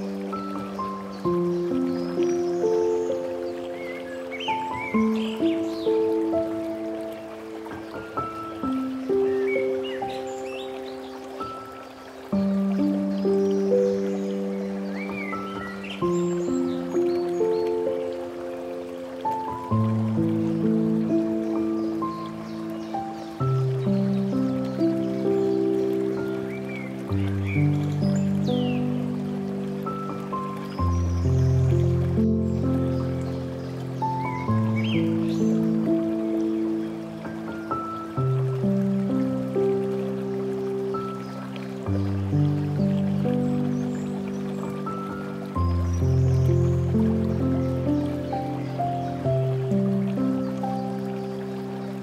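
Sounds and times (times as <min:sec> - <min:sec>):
running water: 0:00.0 - 0:52.0
slow solo piano: 0:00.0 - 0:52.0
bird chirps: 0:00.3 - 0:06.4, 0:07.8 - 0:18.2.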